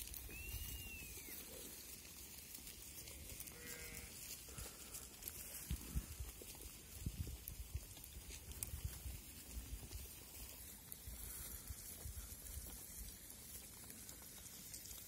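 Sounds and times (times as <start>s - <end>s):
sheep and goats bleating: 2.6s - 6.4s.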